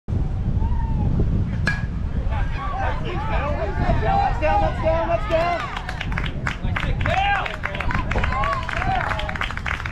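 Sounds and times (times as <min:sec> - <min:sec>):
wind rumbling on microphone: 0:00.1 - 0:09.9
bat hitting ball metallic ping: 0:01.6 - 0:02.0.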